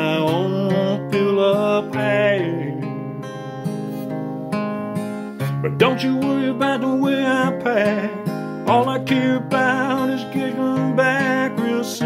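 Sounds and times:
man singing: 0.0 - 3.0, 5.4 - 12.0
acoustic guitar strumming: 0.0 - 12.0.

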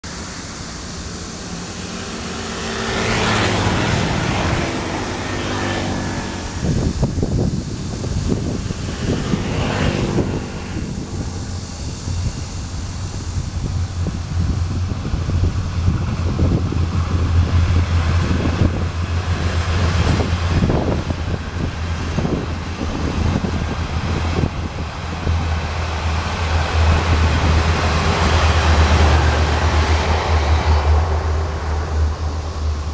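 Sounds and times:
diesel train rumble: 0.0 - 32.9
wheels clacking on rails: 1.5 - 32.9.

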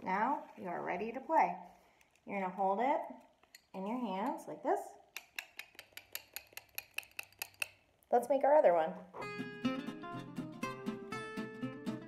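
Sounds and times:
castanet clicking: 5.1 - 7.9.

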